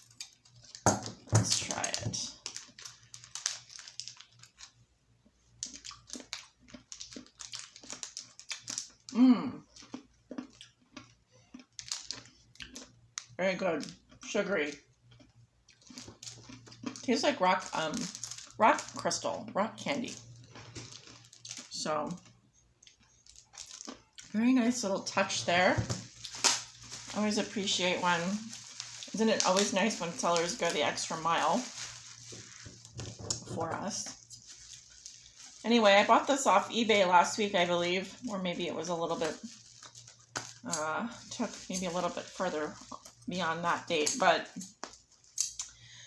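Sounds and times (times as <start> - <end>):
plastic packet crinkling: 0.0 - 4.8, 5.4 - 9.1, 9.8 - 15.2, 15.8 - 43.3
hard candy being chewed: 5.5 - 24.4, 39.4 - 41.3, 42.7 - 43.3.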